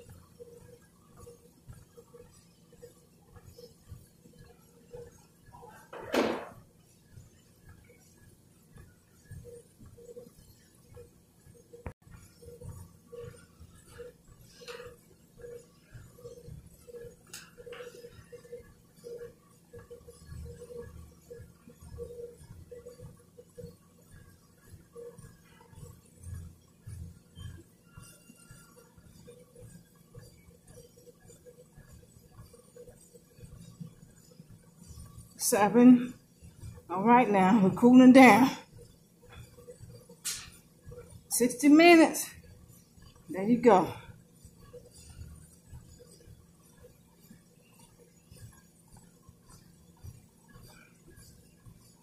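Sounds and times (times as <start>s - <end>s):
footfalls on treadmill: 0.0s - 35.2s
treadmill belt running: 0.0s - 52.0s.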